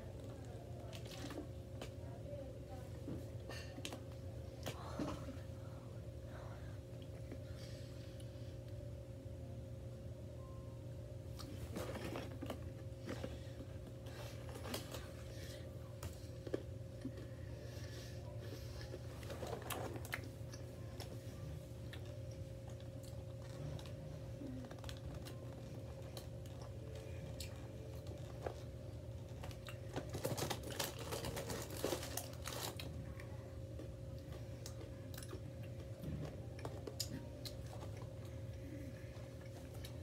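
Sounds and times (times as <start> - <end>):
low steady hum: 0.0 - 40.0
chewing food: 18.5 - 40.0.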